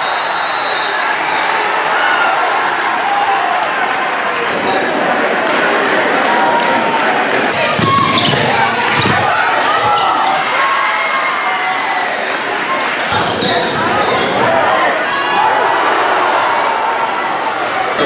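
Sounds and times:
echoing crowd and player voices: 0.0s - 18.0s.

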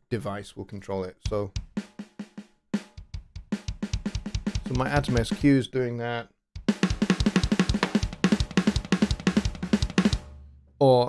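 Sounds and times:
kick and snare drum hits: 1.3s - 2.2s, 2.8s - 5.5s, 6.6s - 10.3s.

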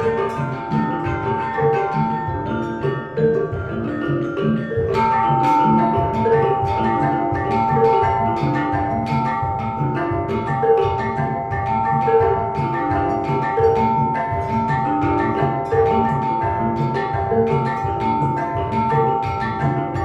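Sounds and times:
gamelan ensemble playing: 0.0s - 20.0s.

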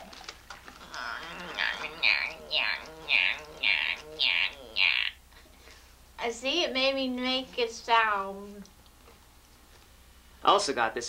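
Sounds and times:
person squealing: 0.8s - 5.2s.

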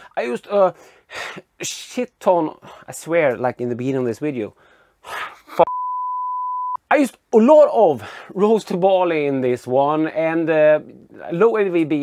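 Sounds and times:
censor bleep: 5.7s - 6.8s.

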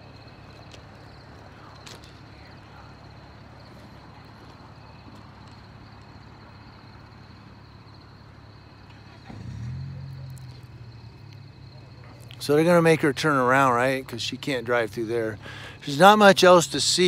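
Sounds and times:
street background noise: 0.0s - 17.0s
vehicle engine hum: 0.0s - 17.0s.

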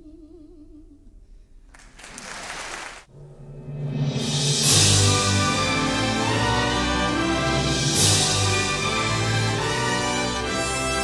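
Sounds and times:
symphony orchestra playing: 3.2s - 11.0s.

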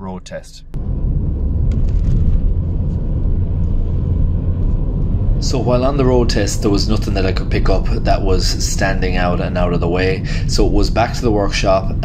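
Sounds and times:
car engine and road noise: 0.7s - 12.0s.

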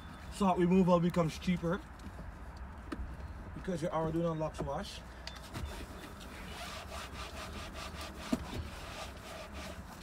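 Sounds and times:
towel rubbing door panel: 6.5s - 9.8s.

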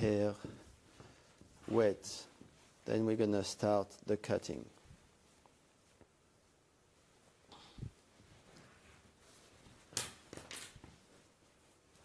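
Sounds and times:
cloth rustles: 0.0s - 12.0s.

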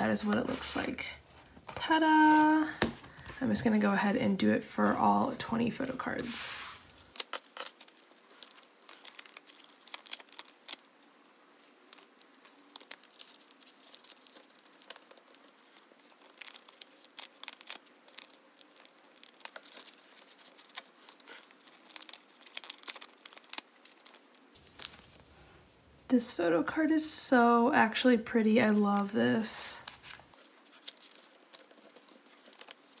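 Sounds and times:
plastic sleeves crinkling: 0.0s - 3.8s, 4.9s - 33.0s.

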